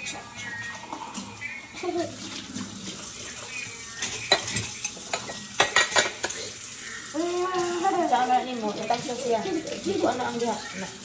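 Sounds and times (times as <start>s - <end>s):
running tap water: 0.0s - 11.0s
metal utensils clinking against mug: 3.9s - 6.5s.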